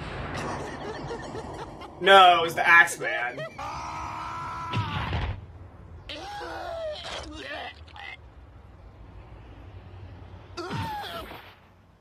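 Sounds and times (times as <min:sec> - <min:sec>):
man crying out and groaning: 0:06.1 - 0:07.9.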